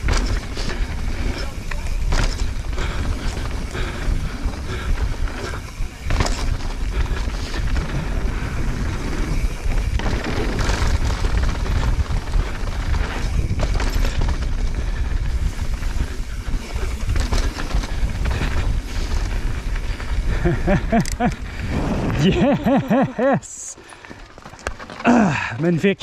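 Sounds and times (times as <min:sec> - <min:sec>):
bike clattering over bumps: 0:00.0 - 0:23.1
low tyre rumble: 0:00.0 - 0:23.2
wind buffeting microphone: 0:00.0 - 0:23.2.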